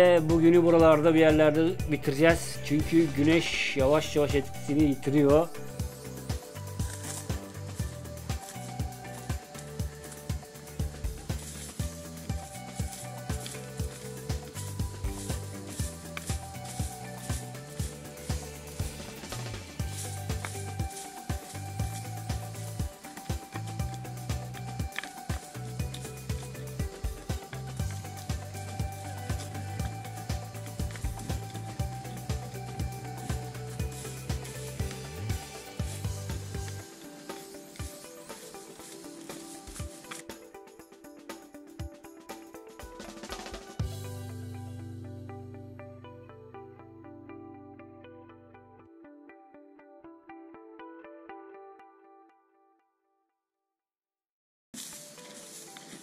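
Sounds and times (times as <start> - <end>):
background music: 0.0 - 52.7
stick scraping dry dirt: 6.2 - 40.4.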